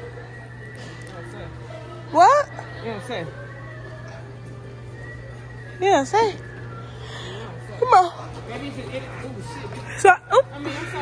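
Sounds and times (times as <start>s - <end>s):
faint background music: 0.0s - 11.0s
steady low hum: 0.0s - 11.0s.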